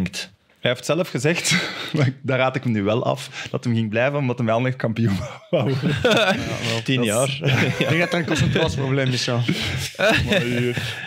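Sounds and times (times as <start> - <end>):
men laughing: 5.1 - 11.0.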